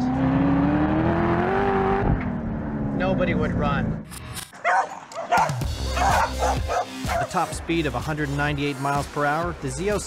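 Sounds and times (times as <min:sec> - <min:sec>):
dog barking: 0:04.6 - 0:07.3
background music: 0:05.2 - 0:10.0.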